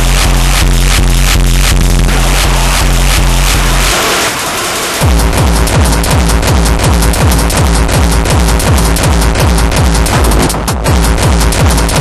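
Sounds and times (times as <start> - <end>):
hardcore techno track: 0.0 - 12.0
pounding bass and beat: 0.0 - 12.0
hissing noise sweep: 2.0 - 6.2.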